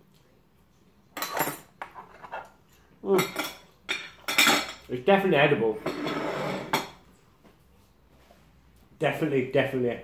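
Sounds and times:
metal fork scraping a plate: 5.8s - 7.0s.

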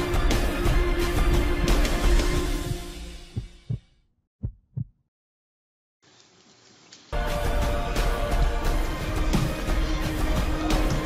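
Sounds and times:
heartbeat thumps: 2.6s - 5.0s
intro music: 7.2s - 11.0s.

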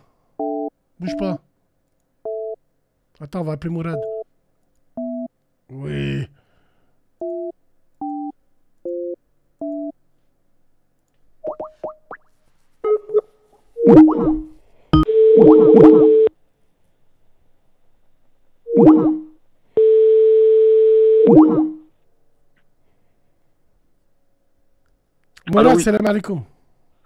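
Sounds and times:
ringback tone: 13.8s - 16.3s
two-tone telephone beeps: 15.0s - 16.3s.

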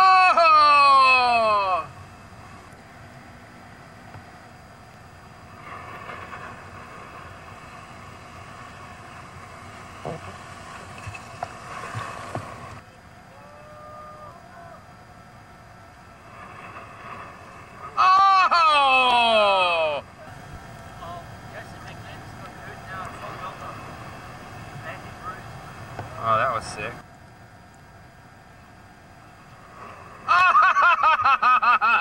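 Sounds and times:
faint distant call: 0.0s - 30.6s
muffled surf and water rushing: 0.0s - 32.0s.

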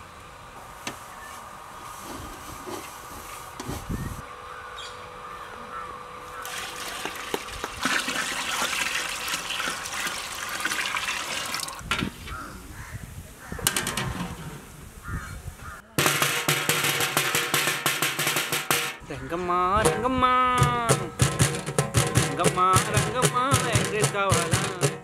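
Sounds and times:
water pouring into metal pot: 6.4s - 11.8s
metal clanks: 13.6s - 14.5s, 16.0s - 19.1s, 19.8s - 25.0s
music: 20.6s - 25.0s.

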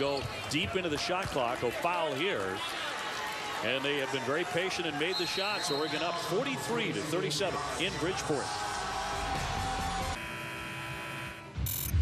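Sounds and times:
steady buzzing tone: 10.1s - 12.0s.

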